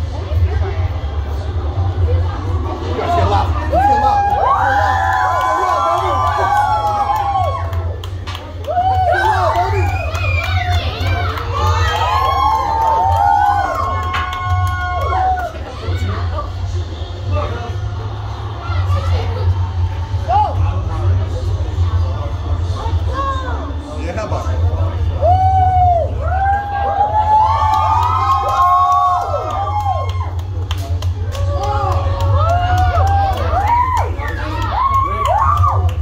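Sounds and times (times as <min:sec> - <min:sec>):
children cheering and shouting: 0:08.6 - 0:16.2.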